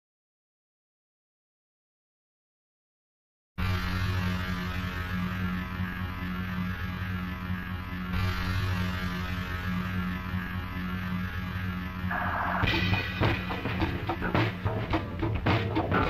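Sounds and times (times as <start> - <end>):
electrical hum drone: 3.6 - 16.0
static hiss: 3.6 - 16.0.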